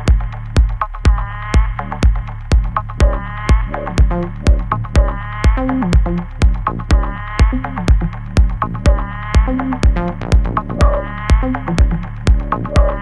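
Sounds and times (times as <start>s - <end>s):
electronic synthesizer music: 0.0s - 13.0s
steady kick drum: 0.0s - 13.0s.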